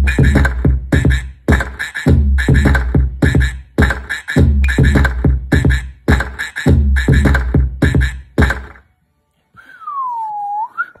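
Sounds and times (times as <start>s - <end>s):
music beat: 0.0s - 8.9s
whistle-like gliding tone: 9.6s - 11.0s.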